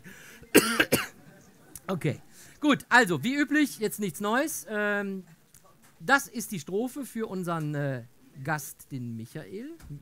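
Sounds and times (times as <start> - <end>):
person coughing: 0.5 - 1.1.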